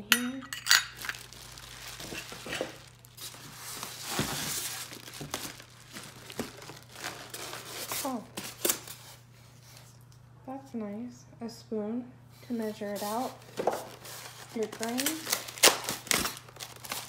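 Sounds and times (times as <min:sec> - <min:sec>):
plastic bag crinkling: 0:00.5 - 0:09.0, 0:13.3 - 0:17.0
foam packaging rubbing: 0:01.0 - 0:09.2, 0:12.8 - 0:17.0.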